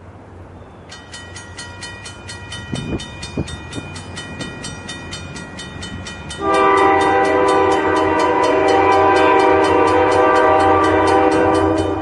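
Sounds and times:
railroad crossing bell ringing: 0.8 - 12.0.

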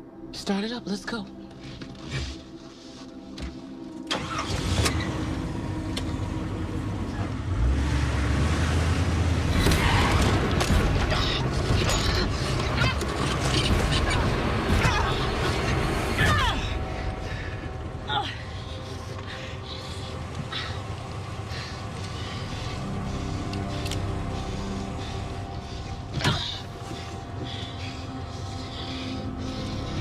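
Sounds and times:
car engine starting and driving off: 4.1 - 18.0.

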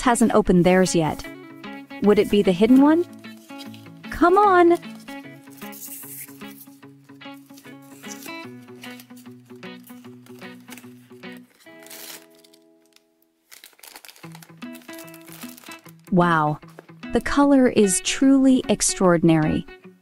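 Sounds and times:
background music: 0.0 - 20.0
packaging crinkling and rustling: 2.4 - 16.9.

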